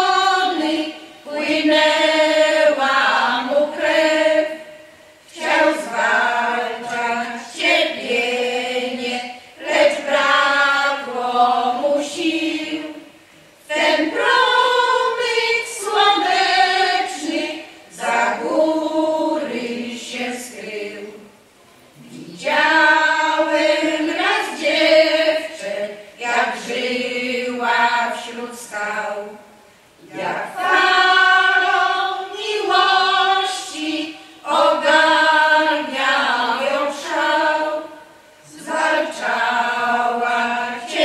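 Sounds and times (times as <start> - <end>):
women's choir singing unaccompanied: 0.0 - 41.0.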